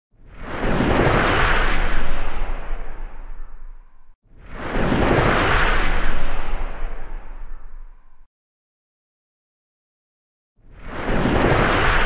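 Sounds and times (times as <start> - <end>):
whoosh and boom transition: 0.2 - 3.4, 4.3 - 7.7, 10.7 - 12.0.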